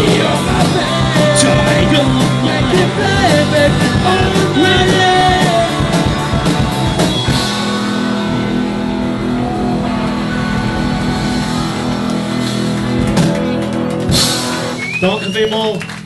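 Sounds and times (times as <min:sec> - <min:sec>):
live rock band playing: 0:00.0 - 0:16.0.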